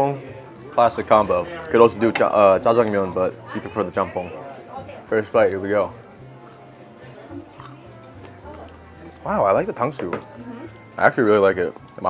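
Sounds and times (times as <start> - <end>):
faint indistinct voices: 0.0 - 12.0
soft music: 0.0 - 12.0.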